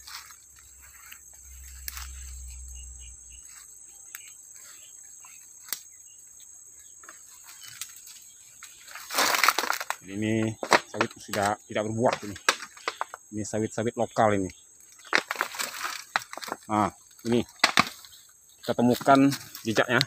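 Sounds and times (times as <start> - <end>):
twigs cracking: 0.0 - 2.4, 3.5 - 6.0, 7.0 - 13.4, 14.3 - 20.0
vegetation brushing: 0.0 - 6.0, 7.0 - 13.3
footsteps through undergrowth: 0.0 - 13.3, 14.9 - 20.0.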